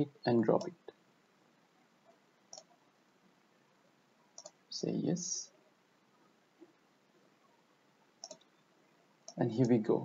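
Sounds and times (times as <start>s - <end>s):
computer mouse clicks: 2.5s - 2.8s, 4.4s - 4.6s, 8.2s - 8.6s.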